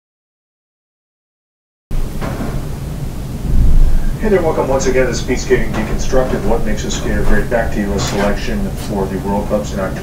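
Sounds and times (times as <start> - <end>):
low steady rumbling: 1.9 - 10.0.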